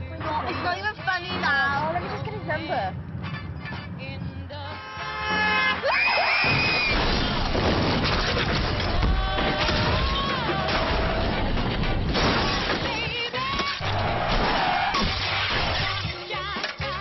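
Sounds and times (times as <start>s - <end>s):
tyres shrieking: 5.4s - 7.5s, 13.5s - 16.0s
car crash impact: 6.4s - 16.1s
crashing metal: 6.4s - 16.8s
glass shattering: 6.4s - 16.8s.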